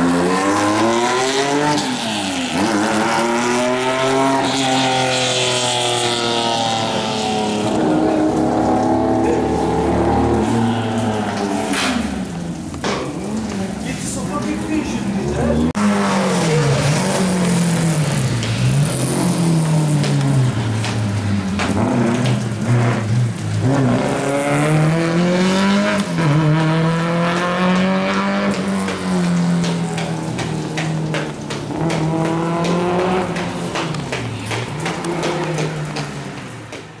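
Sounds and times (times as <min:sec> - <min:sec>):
rally car engine revving: 0:00.0 - 0:36.8.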